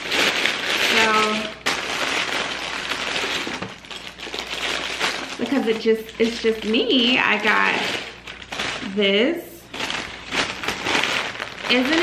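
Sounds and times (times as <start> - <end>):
wrapping paper rustling: 0.0 - 12.0.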